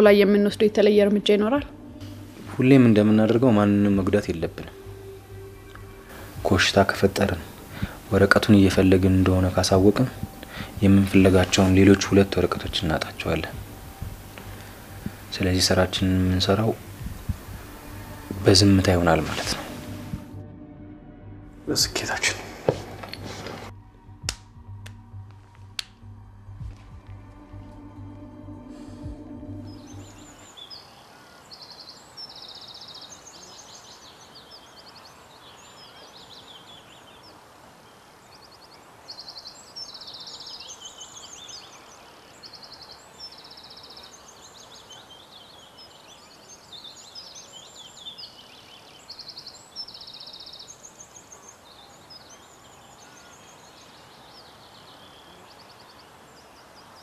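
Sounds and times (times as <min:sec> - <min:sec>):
birds singing and chirping: 0:00.0 - 0:20.3, 0:28.4 - 0:57.0
steady background hiss: 0:00.0 - 0:20.4, 0:21.6 - 0:57.0
low drone: 0:00.0 - 0:30.7
quiet background music: 0:00.0 - 0:57.0.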